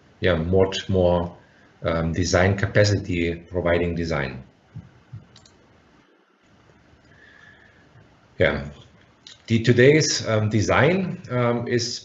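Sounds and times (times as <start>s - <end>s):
low room hiss: 0.0s - 12.0s
computer mouse clicking: 4.8s - 5.6s.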